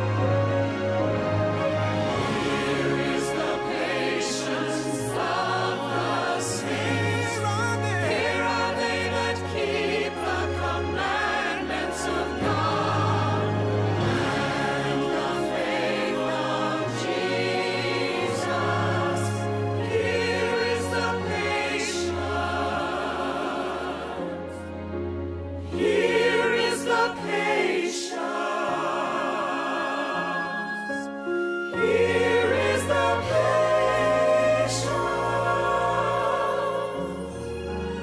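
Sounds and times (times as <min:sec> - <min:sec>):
choir singing a hymn: 0:00.0 - 0:38.0
instrumental accompaniment: 0:00.0 - 0:38.0.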